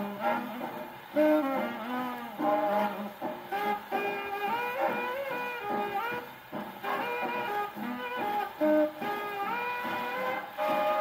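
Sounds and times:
swing big band record on phonograph: 0.0s - 11.0s.

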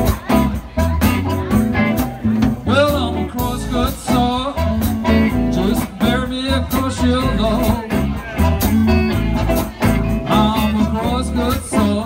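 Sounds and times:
bass guitar: 0.0s - 12.0s
drums: 0.0s - 12.0s
electric guitars: 0.0s - 12.0s
person singing: 2.6s - 12.0s.

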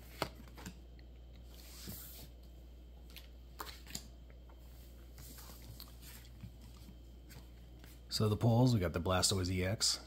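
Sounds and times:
cards rustling and sliding: 0.0s - 0.8s, 1.4s - 2.4s.

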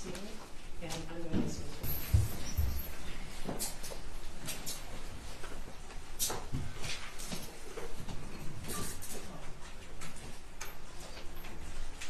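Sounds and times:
low rustle of a room: 0.0s - 12.0s.

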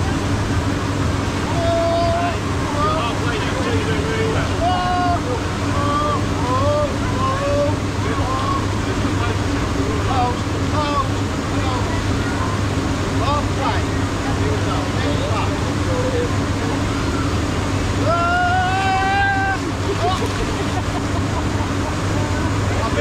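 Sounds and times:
chatter of many voices: 0.0s - 23.0s
steady low hum: 0.0s - 23.0s
person's long rising shout: 18.0s - 19.8s.

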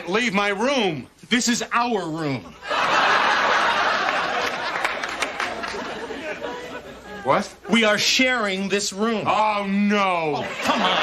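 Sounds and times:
studio audience laughter: 2.6s - 8.0s, 10.4s - 11.0s.

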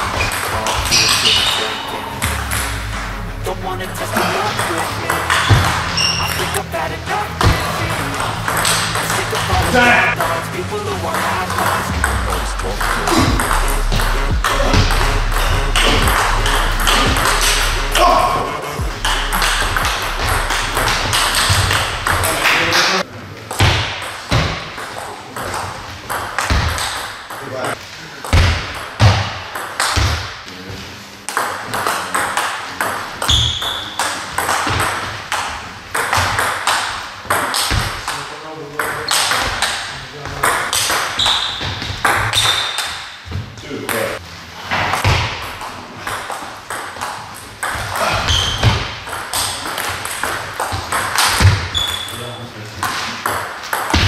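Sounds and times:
hall ambience: 0.0s - 23.0s
rap music with deep bass: 1.9s - 22.4s.

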